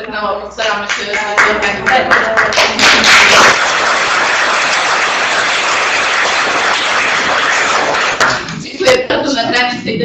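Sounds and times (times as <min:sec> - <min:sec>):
audience applauding: 0:00.9 - 0:08.6.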